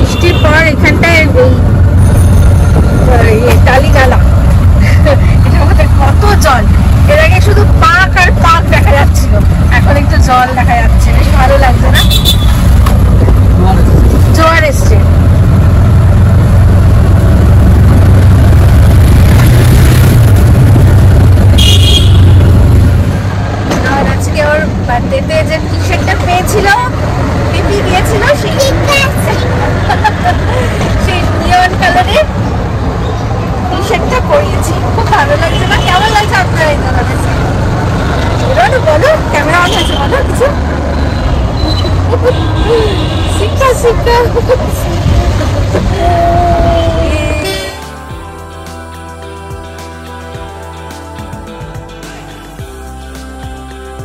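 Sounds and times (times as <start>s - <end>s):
auto-rickshaw engine drone: 0.0s - 54.0s.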